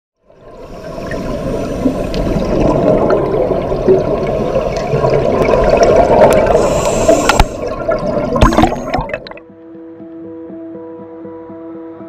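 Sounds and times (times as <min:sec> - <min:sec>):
underwater bubbling rush: 0:00.3 - 0:09.4.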